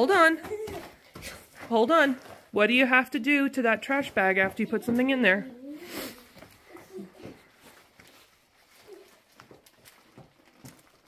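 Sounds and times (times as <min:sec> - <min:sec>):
plastic bag rustling: 0:06.5 - 0:11.0.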